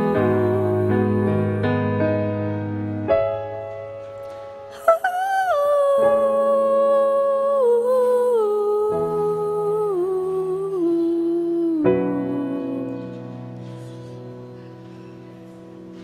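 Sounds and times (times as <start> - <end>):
woman singing wordless line: 0.0 - 1.8, 4.8 - 13.3
sustained piano chords: 0.0 - 16.0.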